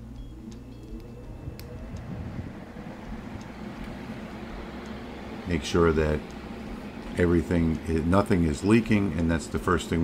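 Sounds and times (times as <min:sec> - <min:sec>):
faint rising tone: 0:00.0 - 0:07.0
water chiller humming: 0:00.0 - 0:10.0
small clicks: 0:00.1 - 0:02.1.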